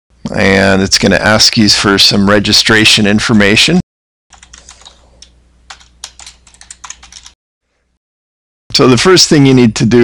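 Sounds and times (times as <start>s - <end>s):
keyboard typing clicks: 4.3s - 7.4s.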